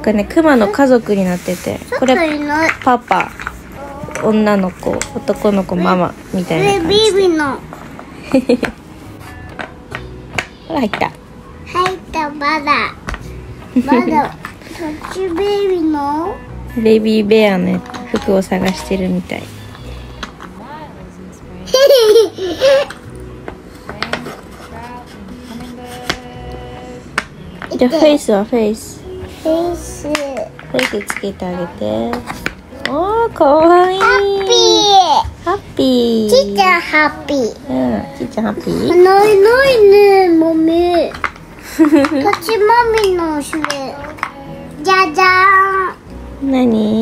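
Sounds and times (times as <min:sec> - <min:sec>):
child laughing: 0:21.7 - 0:22.9.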